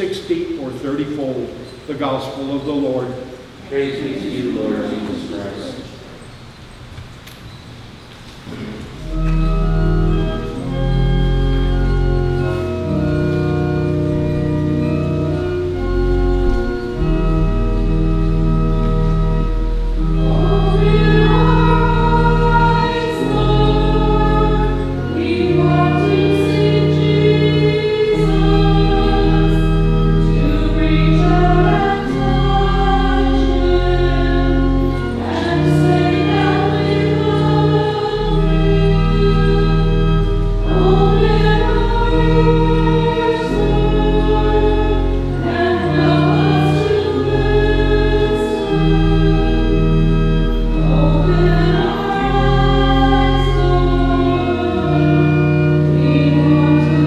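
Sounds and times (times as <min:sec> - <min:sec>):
choir singing a hymn: 0:00.0 - 0:06.3, 0:08.4 - 0:57.0
organ accompaniment: 0:00.0 - 0:57.0.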